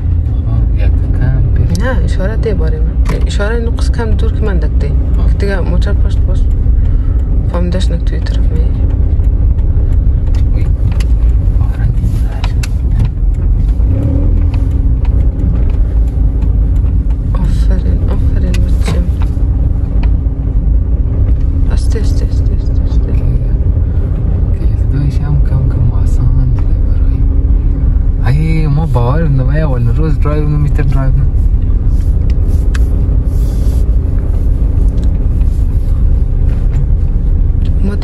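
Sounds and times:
car engine and road noise: 0.0s - 38.0s.

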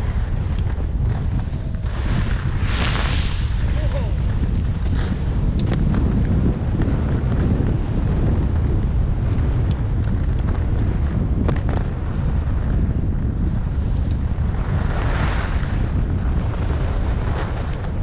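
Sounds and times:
wind buffeting microphone: 0.0s - 18.0s
skis hissing over snow: 1.3s - 5.4s, 13.7s - 17.7s.

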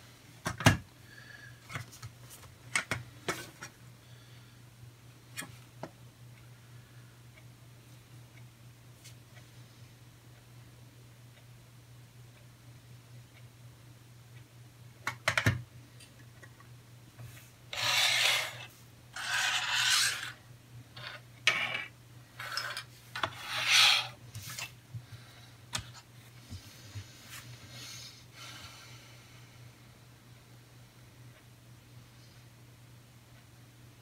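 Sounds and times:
faint low hum: 0.0s - 34.0s.

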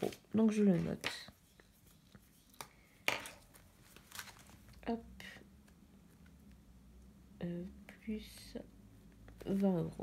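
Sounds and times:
pages and plastic sheets flipping: 0.0s - 4.8s.

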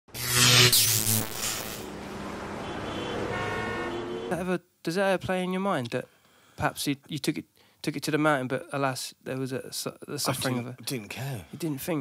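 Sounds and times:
noisy electronic hum: 0.1s - 4.3s.

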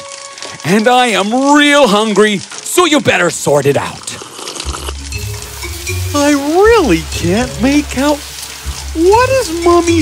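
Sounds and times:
food sizzling in a pan: 4.2s - 10.0s
low background music: 4.7s - 10.0s.

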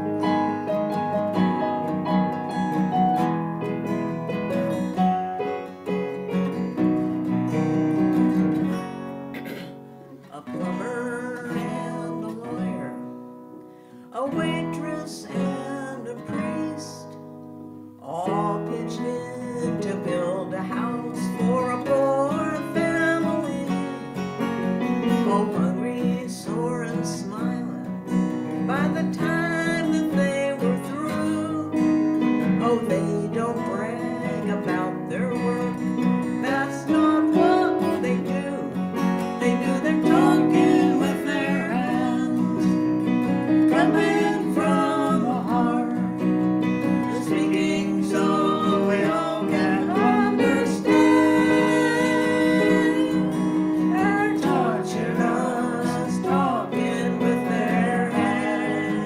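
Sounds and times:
acoustic guitar: 0.0s - 59.0s
woman and man singing: 10.3s - 13.2s, 14.1s - 17.2s, 18.0s - 24.2s, 25.1s - 28.0s, 28.6s - 59.0s.

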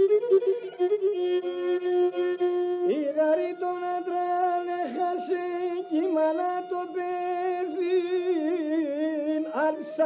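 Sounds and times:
bowed lyra folk melody: 0.0s - 10.0s.

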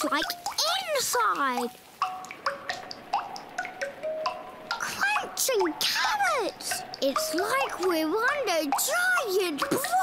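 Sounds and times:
raindrops plinking on a tent: 0.0s - 10.0s.

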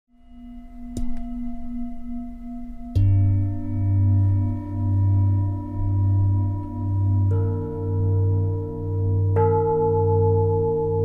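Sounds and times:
sustained ringing tone: 0.1s - 11.0s.

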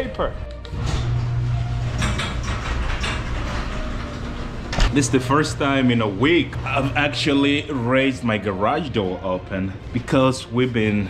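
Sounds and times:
garage door travelling up tracks: 0.7s - 7.2s
garage door opener motor hum: 0.7s - 7.9s.

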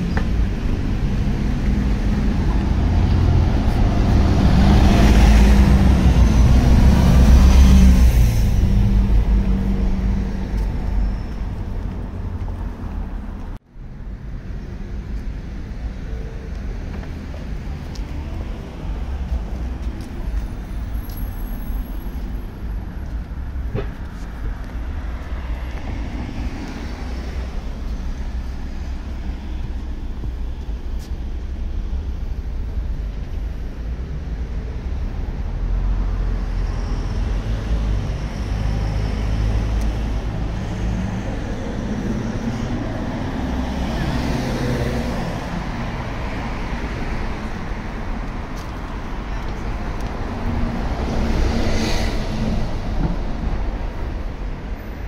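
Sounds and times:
cars and buses passing: 0.0s - 55.0s.

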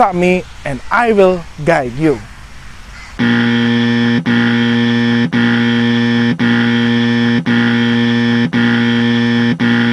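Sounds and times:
harsh electronic buzzer: 3.2s - 9.9s.

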